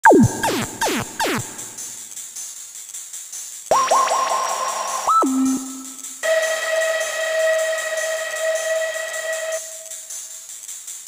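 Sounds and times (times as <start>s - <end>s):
steady hiss: 0.5s - 11.0s
held synthesizer note: 3.7s - 9.9s.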